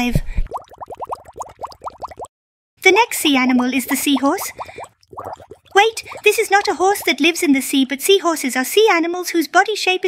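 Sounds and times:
cartoon bubble bloops: 0.4 - 2.3, 3.8 - 7.2.

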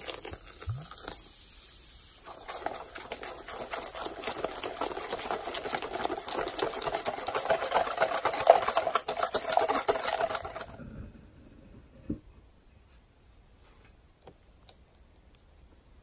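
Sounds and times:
whisk beating batter in glass bowl: 2.2 - 10.8.

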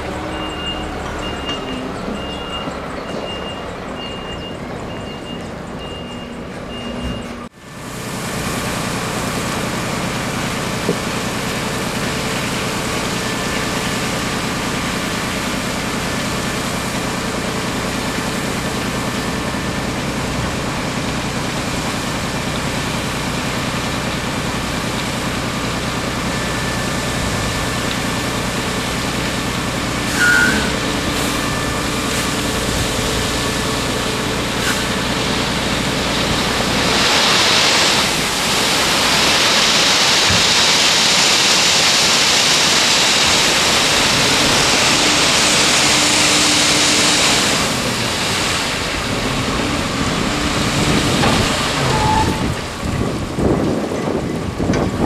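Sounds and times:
truck engine running: 0.0 - 55.0.

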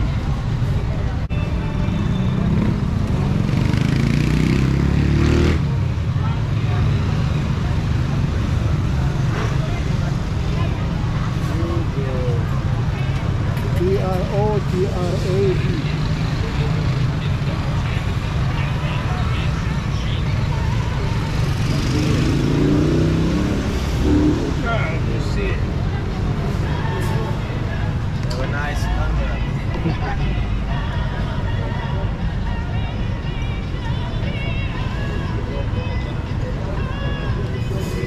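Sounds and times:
people's voices: 0.0 - 38.0.

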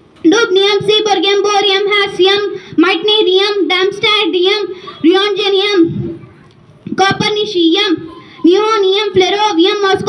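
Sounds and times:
girl chanting words fast: 0.2 - 10.0.

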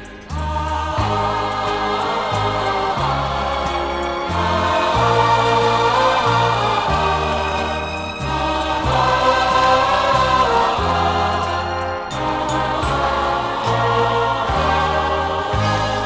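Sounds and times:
choir singing: 0.0 - 16.0
orchestral bass held notes: 0.0 - 16.0.

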